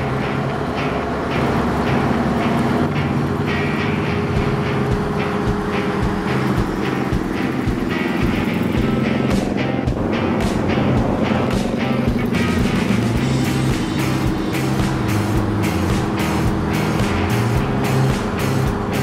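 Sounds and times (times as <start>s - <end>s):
diesel truck engine running: 0.0s - 19.0s
background music with beat: 2.9s - 19.0s.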